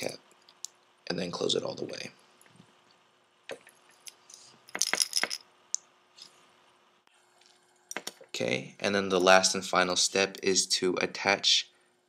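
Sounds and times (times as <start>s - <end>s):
small metal parts clinking: 4.0s - 5.5s.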